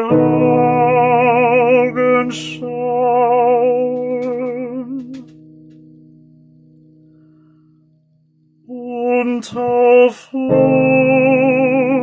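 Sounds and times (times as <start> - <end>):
man singing: 0.0 - 5.3, 8.7 - 12.0
digital piano chord: 0.0 - 8.7.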